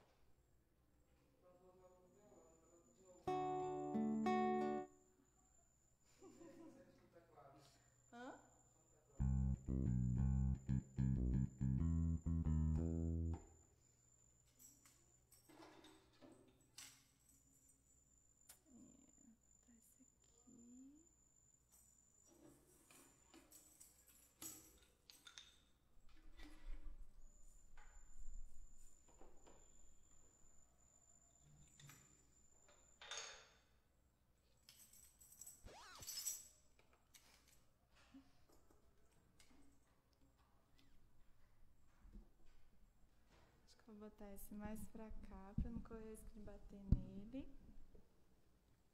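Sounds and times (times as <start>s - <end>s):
electric keyboard burst of notes: 9.2s - 13.4s.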